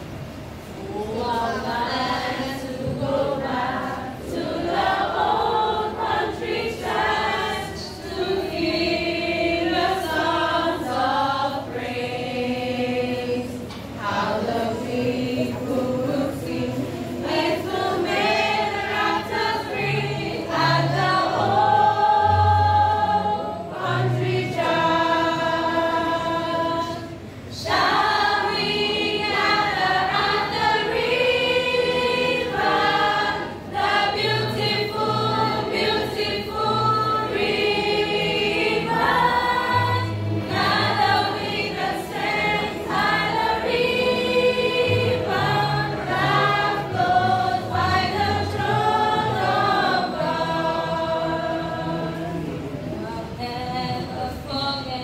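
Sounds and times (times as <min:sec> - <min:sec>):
choir singing: 0:00.8 - 0:55.0.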